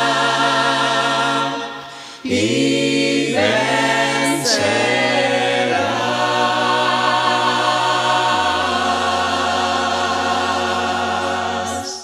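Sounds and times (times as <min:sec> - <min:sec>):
vocal chorus singing: 0:00.0 - 0:12.0.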